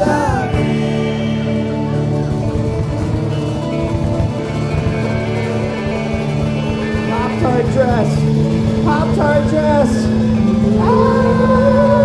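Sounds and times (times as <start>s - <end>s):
man singing: 0.0s - 2.0s, 7.1s - 12.0s
bass guitar: 0.0s - 12.0s
drums: 0.0s - 12.0s
electric and acoustic guitars: 0.0s - 12.0s.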